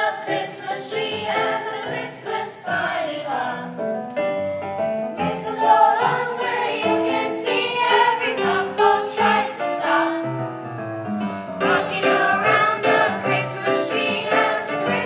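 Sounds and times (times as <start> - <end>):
children's choir singing: 0.0 - 3.9, 5.2 - 10.5, 11.6 - 15.0.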